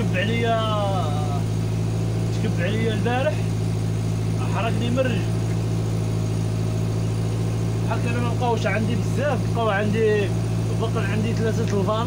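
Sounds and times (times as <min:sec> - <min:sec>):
water pump engine humming: 0:00.0 - 0:12.0.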